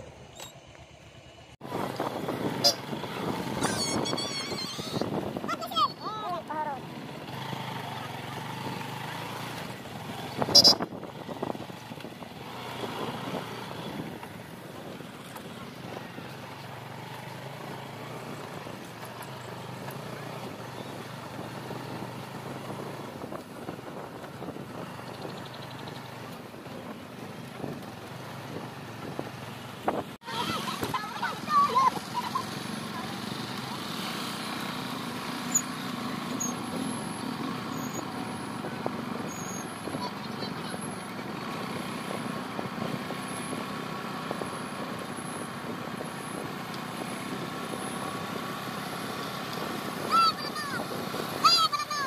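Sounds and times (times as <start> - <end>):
motorcycle engine running: 0.0 - 51.9.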